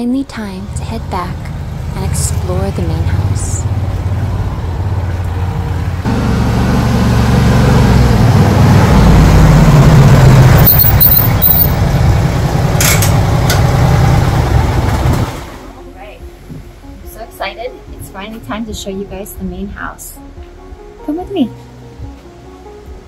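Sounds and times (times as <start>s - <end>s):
utility vehicle engine running: 0.5s - 15.8s.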